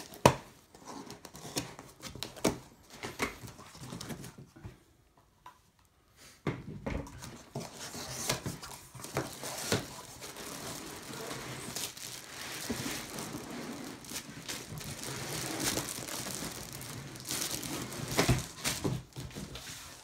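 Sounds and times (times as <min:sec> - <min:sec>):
plastic bag crinkling: 0:08.5 - 0:20.0.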